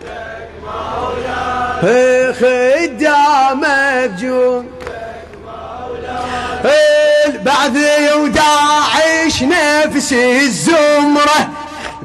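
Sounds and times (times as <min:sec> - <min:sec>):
man chanting a lament: 0:01.8 - 0:04.8, 0:06.2 - 0:12.0.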